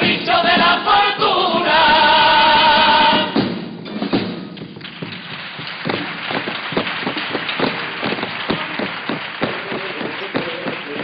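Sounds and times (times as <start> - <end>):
audience applauding: 4.6 - 11.0.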